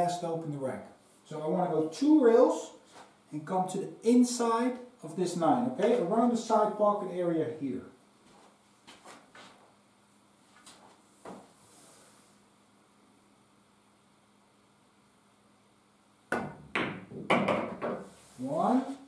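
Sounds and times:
cue striking cue ball: 0:16.3 - 0:18.0.

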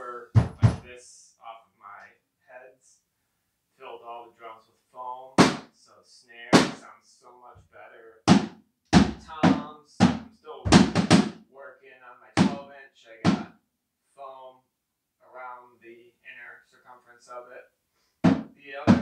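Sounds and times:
drum toms struck: 0:00.3 - 0:00.9, 0:08.3 - 0:11.4, 0:12.4 - 0:12.6, 0:13.2 - 0:13.5, 0:18.2 - 0:19.0.

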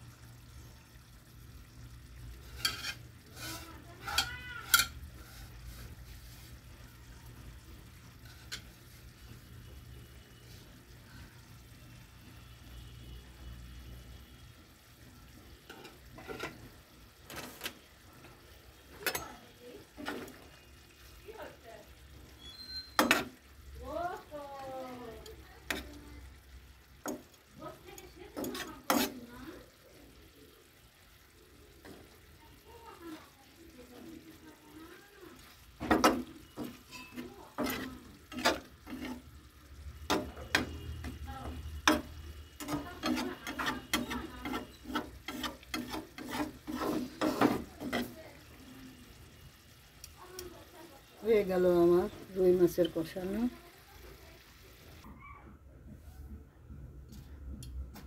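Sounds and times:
curry simmering: 0:00.0 - 0:55.1
utensil clinking against pan: 0:02.6 - 0:05.0, 0:35.8 - 0:39.3, 0:40.0 - 0:48.2.

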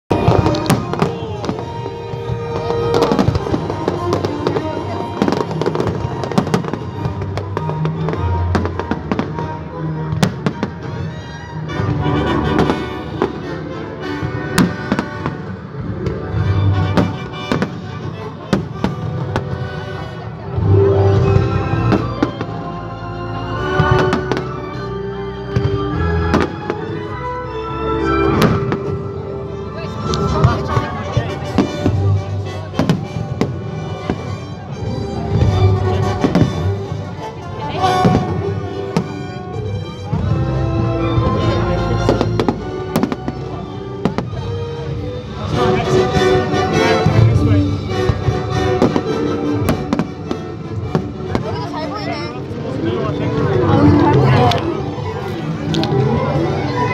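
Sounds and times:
fireworks bangs: 0:00.1 - 0:09.4, 0:42.0 - 0:44.4.

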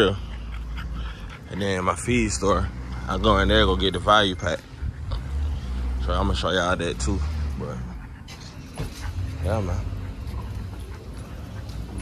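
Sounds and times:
dog snuffling and breathing: 0:00.0 - 0:12.0.

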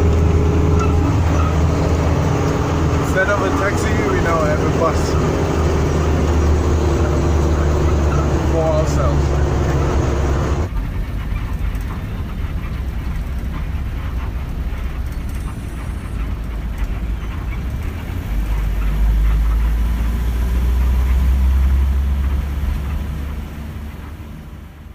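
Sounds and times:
bus engine and road noise: 0:00.0 - 0:24.9.

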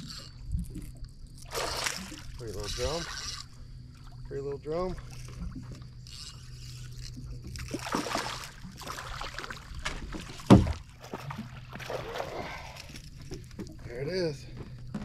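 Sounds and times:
steady low hum: 0:00.0 - 0:15.0
fish splashing in water: 0:07.6 - 0:12.8
thump on boat: 0:09.8 - 0:11.5.

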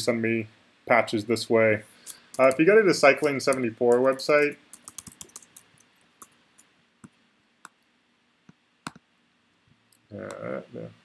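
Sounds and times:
computer mouse clicks: 0:02.1 - 0:02.6, 0:04.7 - 0:06.4, 0:08.8 - 0:09.0.

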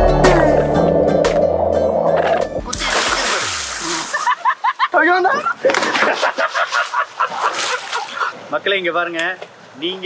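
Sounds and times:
water splashing: 0:00.0 - 0:04.5, 0:05.6 - 0:08.4.

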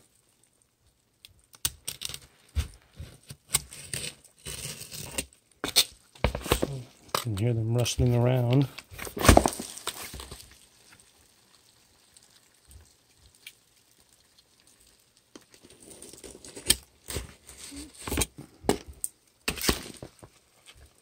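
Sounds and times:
knife cutting packing tape: 0:03.3 - 0:06.6
cardboard box rustling: 0:08.6 - 0:10.4.

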